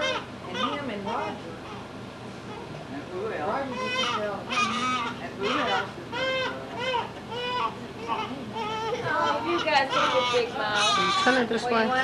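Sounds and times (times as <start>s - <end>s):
newborn baby crying: 0.0s - 1.8s, 3.6s - 11.5s
adult voice murmuring: 10.8s - 11.9s.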